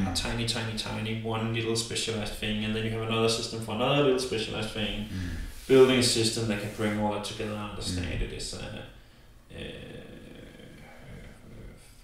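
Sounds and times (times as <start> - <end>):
man murmuring hesitation sound: 0.0 - 0.3, 5.0 - 5.5, 7.8 - 8.3.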